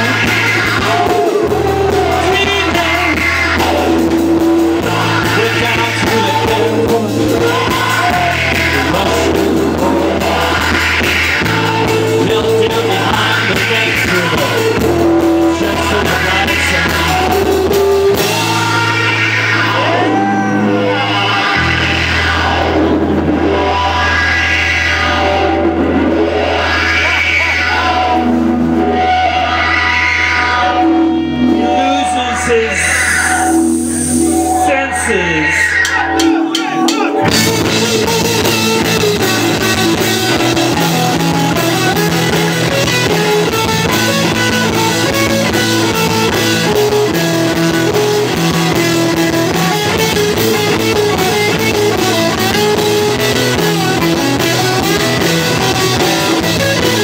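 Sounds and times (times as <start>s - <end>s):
drum kit beat: 0.0s - 23.7s, 35.7s - 57.0s
electric bass: 0.0s - 57.0s
electric guitar: 0.0s - 57.0s
live rock band playing: 0.0s - 57.0s.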